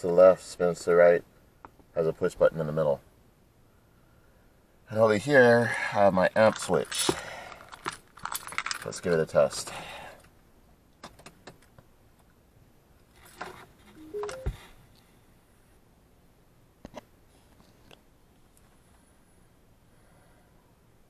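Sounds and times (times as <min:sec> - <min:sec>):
rising electronic chime: 0:14.0 - 0:14.6.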